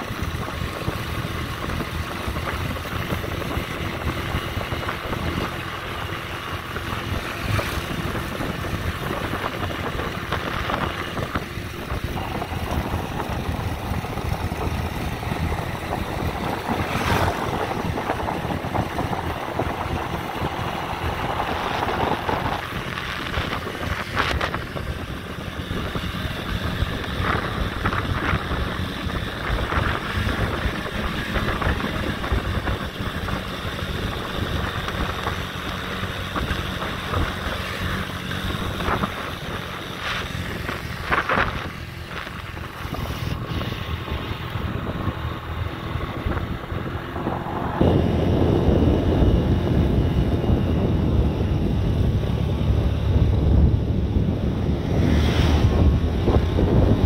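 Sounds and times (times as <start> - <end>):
motorbike engine running: 0.0 - 57.0
wind buffeting microphone: 0.0 - 57.0.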